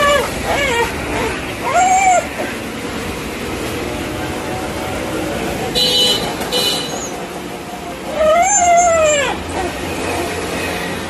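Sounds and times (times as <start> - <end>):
dog whining: 0.0 - 2.7, 8.0 - 10.4.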